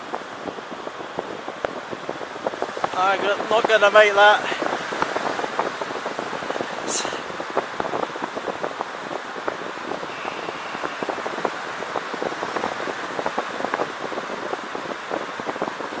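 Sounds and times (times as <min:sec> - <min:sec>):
wind rushing over microphone: 0:00.0 - 0:16.0.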